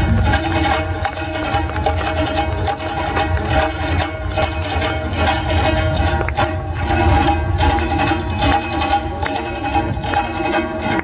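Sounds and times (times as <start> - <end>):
lutes strumming fast: 0.0 - 11.0.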